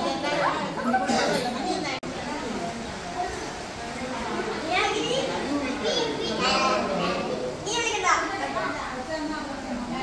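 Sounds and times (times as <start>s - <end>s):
children calling out and chattering: 0.0s - 10.0s
people talking: 0.0s - 10.0s.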